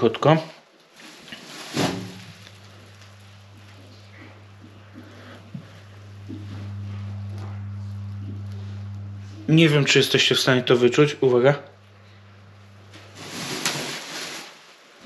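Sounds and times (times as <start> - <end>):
plastic bag crinkle: 0.8 - 4.3, 12.4 - 15.0
low hum from drain pipe: 1.0 - 14.5.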